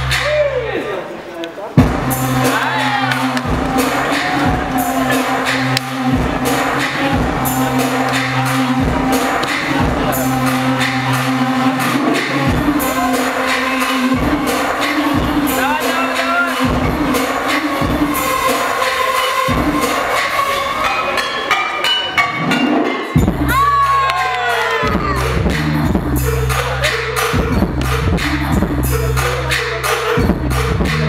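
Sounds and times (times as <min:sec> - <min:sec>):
hip-hop track over sound system: 0:01.7 - 0:31.0
crowd cheering: 0:01.8 - 0:10.9, 0:23.3 - 0:25.8.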